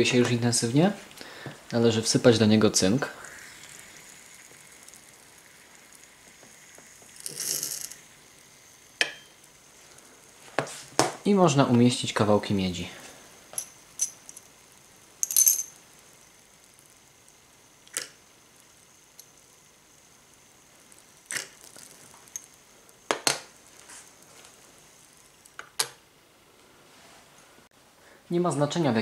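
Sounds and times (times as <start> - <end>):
faint high whine: 0.0 - 29.0
metal clinking against glass beaker: 3.0 - 8.1, 9.0 - 9.5, 13.5 - 16.8.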